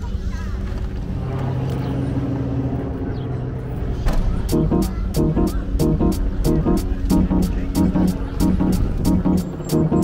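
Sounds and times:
street traffic: 0:00.0 - 0:10.0
vehicle engine humming: 0:00.0 - 0:10.0.

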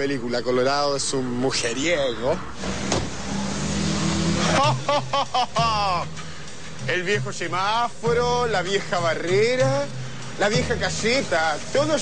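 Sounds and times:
car engine humming: 0:01.2 - 0:12.0.

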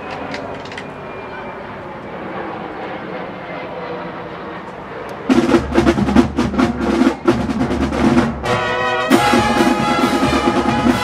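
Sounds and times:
marching drum corps percussion: 0:05.3 - 0:11.0.

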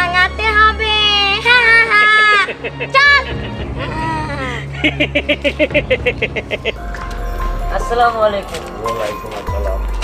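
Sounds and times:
person laughing: 0:01.9 - 0:06.8.

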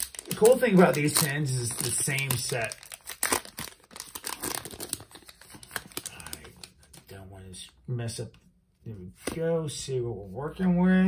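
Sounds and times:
foil wrapper crinkling: 0:00.0 - 0:07.0.

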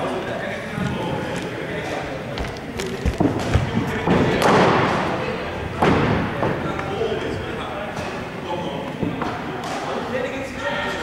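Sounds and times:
hall echo: 0:00.0 - 0:11.0.

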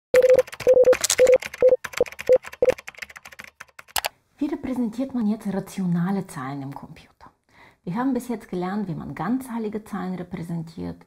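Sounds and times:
rapid typing-like clicking: 0:00.2 - 0:04.1.

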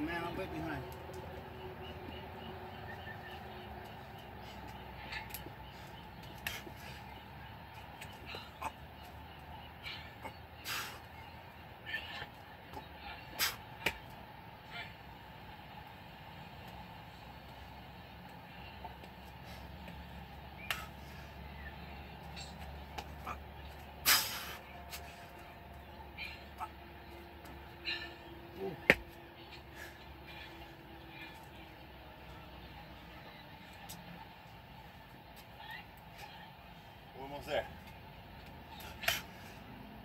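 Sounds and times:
steady background hum: 0:00.0 - 0:40.0
man breathing hard: 0:27.6 - 0:28.6
hands and shoes hitting concrete: 0:28.8 - 0:29.2.

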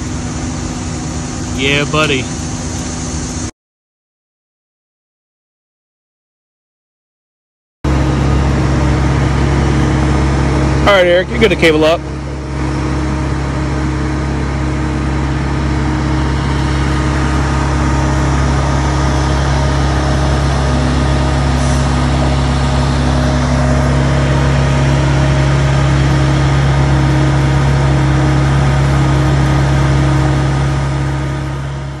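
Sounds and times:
engine humming steadily: 0:00.0 - 0:03.5, 0:07.9 - 0:32.0.

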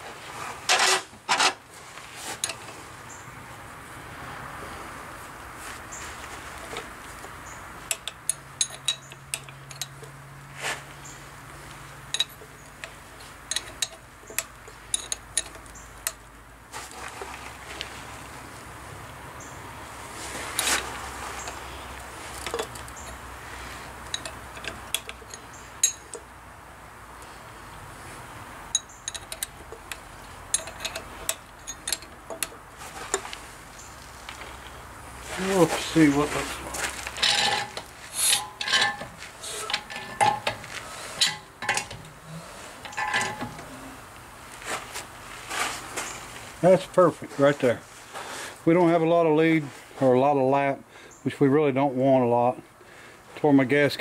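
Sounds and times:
metallic clinks of tools: 0:07.9 - 0:10.1, 0:12.1 - 0:12.7, 0:13.5 - 0:16.2, 0:24.0 - 0:26.3, 0:28.7 - 0:33.2.

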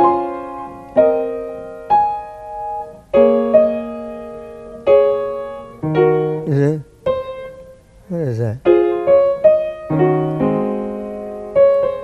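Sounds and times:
piano chords ringing: 0:00.0 - 0:12.0
short vocal sound: 0:06.5 - 0:06.9.

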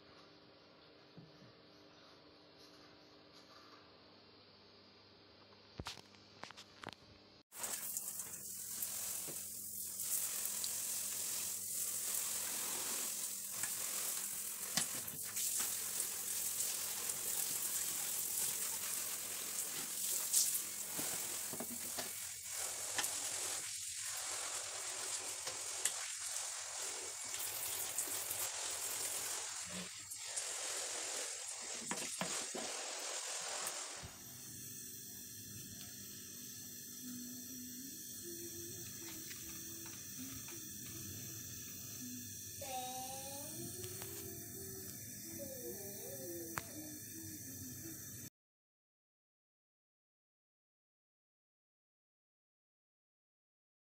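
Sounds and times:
shower spray hissing on screen: 0:07.5 - 0:48.3.

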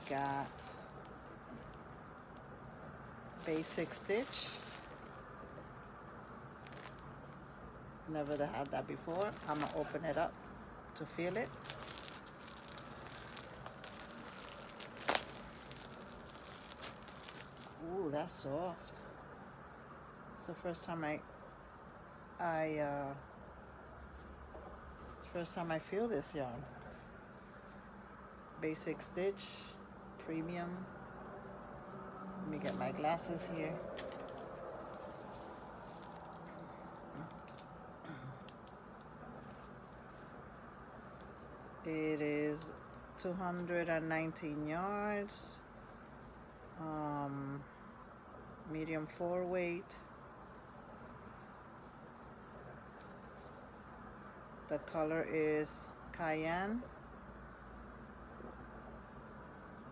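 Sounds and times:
plastic wrapping crinkling: 0:00.0 - 0:01.8, 0:03.3 - 0:05.7, 0:06.5 - 0:07.4, 0:08.1 - 0:17.8, 0:32.6 - 0:37.7
soft rustles: 0:03.3 - 0:07.4, 0:08.1 - 0:17.8, 0:32.5 - 0:37.7, 0:38.5 - 0:41.6, 0:52.4 - 0:53.8.

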